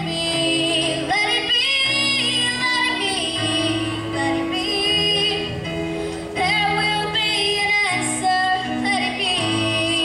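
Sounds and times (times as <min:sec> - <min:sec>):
girl singing slow melody: 0:00.0 - 0:10.0
keyboard chords: 0:00.0 - 0:10.0.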